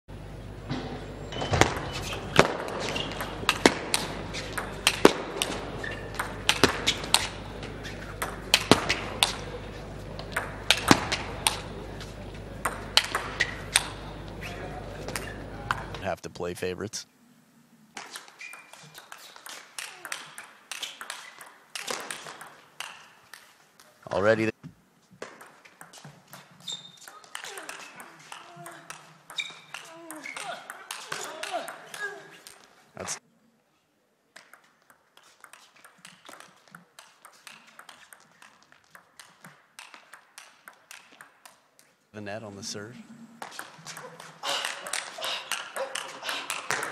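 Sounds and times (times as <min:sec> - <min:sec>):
table tennis ball clicks: 0:02.1 - 0:07.4, 0:12.6 - 0:14.0, 0:18.0 - 0:23.4, 0:25.2 - 0:32.0, 0:34.4 - 0:41.6.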